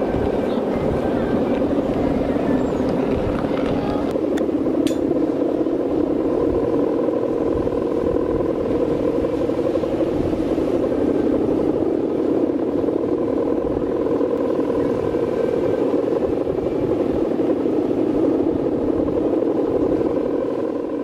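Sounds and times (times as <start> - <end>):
fainter higher hum: 0.0 - 21.0
kite hummers droning: 0.0 - 21.0
wind on microphone: 0.0 - 21.0.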